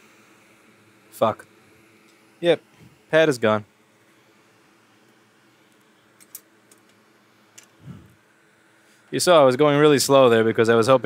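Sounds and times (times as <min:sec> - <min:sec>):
fans humming: 0:00.0 - 0:11.0
short low sound: 0:07.8 - 0:08.2.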